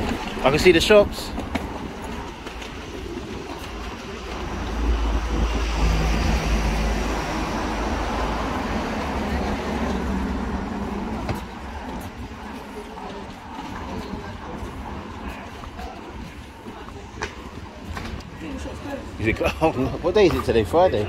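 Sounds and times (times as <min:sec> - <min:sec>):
steady traffic noise: 0:00.0 - 0:21.0
van engine rumble driving past: 0:04.0 - 0:11.9.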